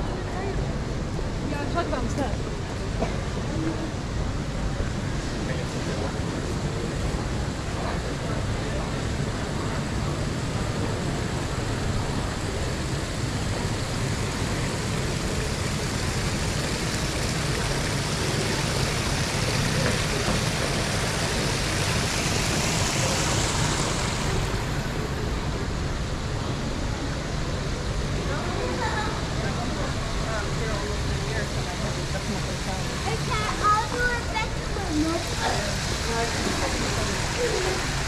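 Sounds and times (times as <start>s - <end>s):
railway station ambience: 0.0s - 38.0s.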